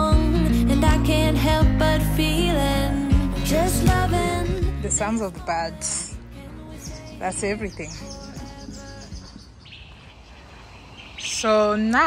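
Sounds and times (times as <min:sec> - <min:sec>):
music: 0:00.0 - 0:09.6
birds chirping: 0:04.4 - 0:12.0.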